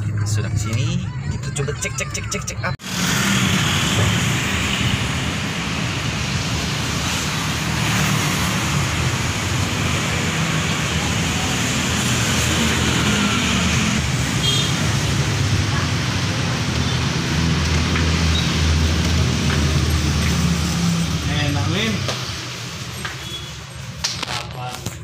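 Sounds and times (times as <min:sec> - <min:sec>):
street traffic rumble: 0:00.0 - 0:25.0.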